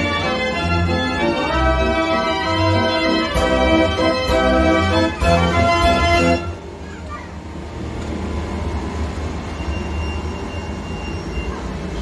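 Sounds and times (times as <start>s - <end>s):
merry-go-round organ music: 0.0s - 6.6s
faint crowd voices: 4.8s - 8.0s, 10.2s - 12.0s.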